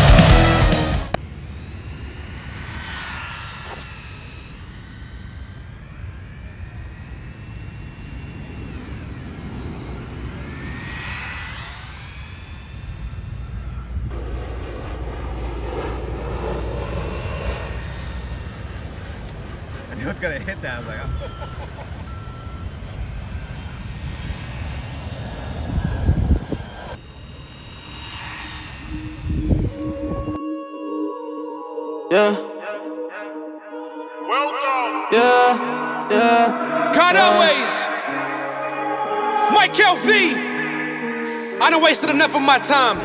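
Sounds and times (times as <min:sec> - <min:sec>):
loud rock music: 0:00.0 - 0:01.2
low rumble: 0:00.0 - 0:30.4
toy car electric motor whine: 0:00.0 - 0:30.4, 0:33.8 - 0:43.0.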